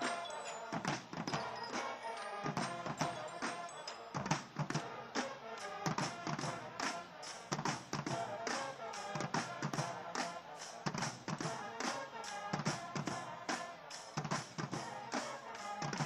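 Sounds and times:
drum beat: 0:00.0 - 0:16.0
marching band playing: 0:00.0 - 0:16.0
horn chords: 0:04.7 - 0:16.0.

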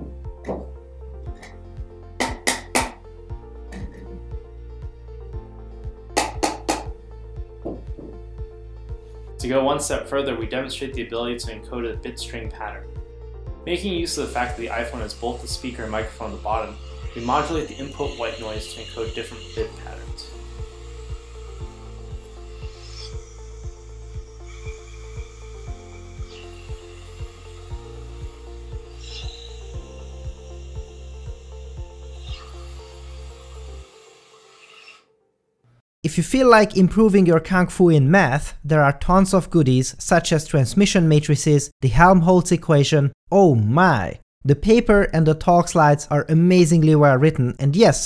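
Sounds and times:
background music with steady beat: 0:00.0 - 0:34.0.

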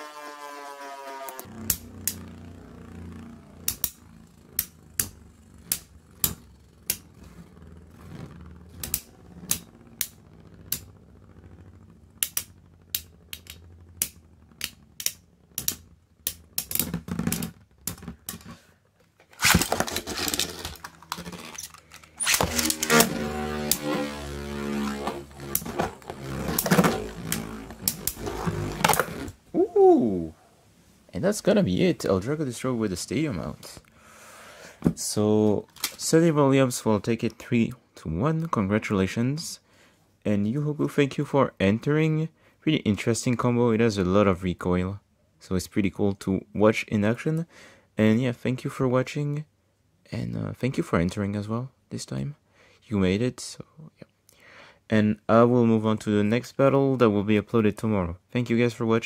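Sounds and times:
falling whine: 0:00.0 - 0:15.5, 0:19.8 - 0:30.3
tops rattling and scraping: 0:03.6 - 0:29.4.

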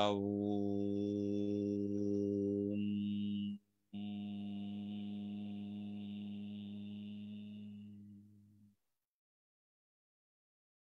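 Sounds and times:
man humming low om: 0:00.0 - 0:08.3.

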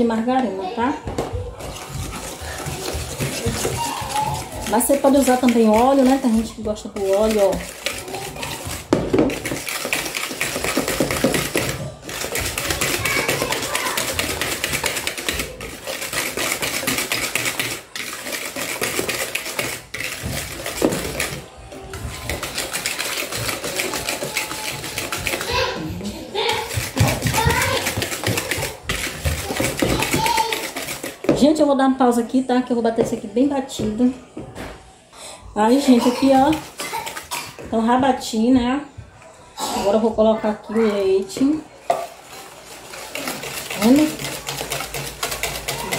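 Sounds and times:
whisk scraping against bowl: 0:01.2 - 0:32.2, 0:35.6 - 0:38.2, 0:40.8 - 0:45.9.

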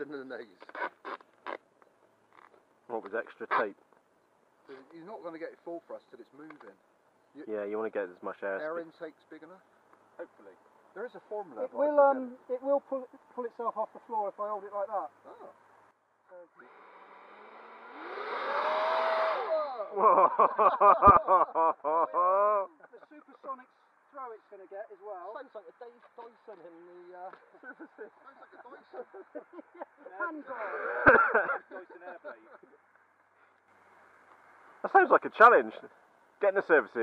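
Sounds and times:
electric ducted fan whine: 0:16.6 - 0:21.4.

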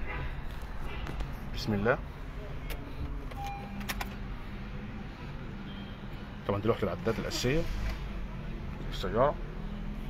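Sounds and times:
ignition clicks: 0:02.6 - 0:04.3
short beep: 0:03.4 - 0:03.9.

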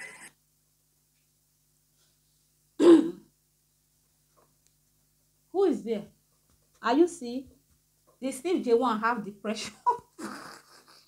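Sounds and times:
woman clearing her throat: 0:02.8 - 0:03.3.

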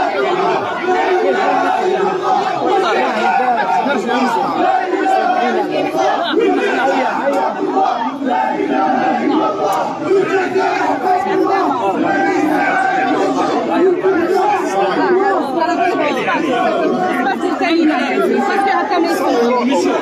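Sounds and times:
crowd shouting and chanting: 0:00.0 - 0:20.0.

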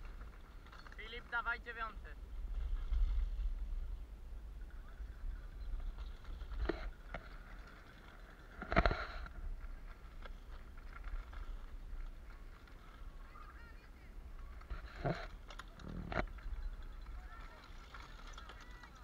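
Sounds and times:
wind rumbling on microphone: 0:02.0 - 0:19.0.

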